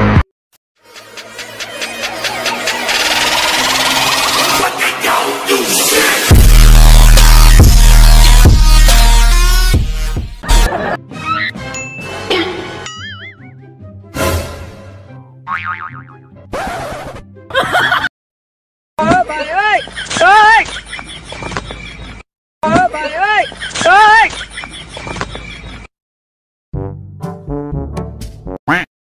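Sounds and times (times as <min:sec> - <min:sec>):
fast electronic pulse: 0:00.9 - 0:04.8
background music: 0:00.9 - 0:18.0, 0:26.8 - 0:28.6.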